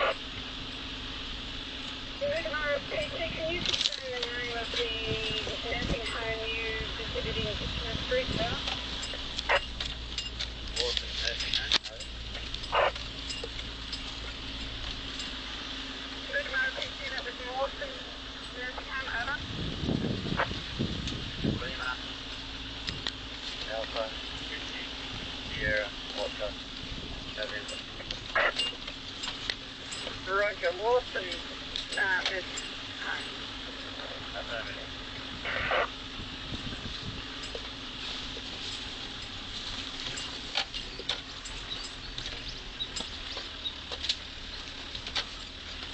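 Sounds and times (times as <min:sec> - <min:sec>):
vehicle engine and road hum: 0:00.0 - 0:45.9
vehicle knocks and rattles: 0:01.6 - 0:45.9.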